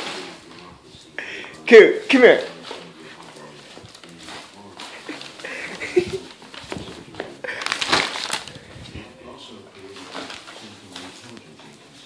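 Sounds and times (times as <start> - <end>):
paper bag crinkling: 2.2 - 11.7.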